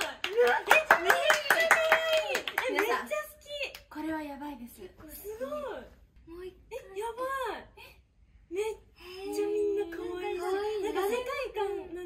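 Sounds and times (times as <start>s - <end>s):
women clapping: 0.0s - 3.8s.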